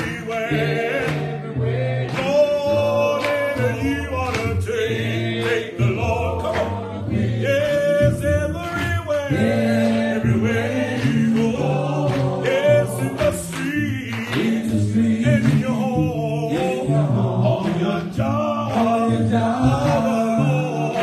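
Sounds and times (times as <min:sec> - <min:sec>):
man and congregation singing: 0:00.0 - 0:21.0.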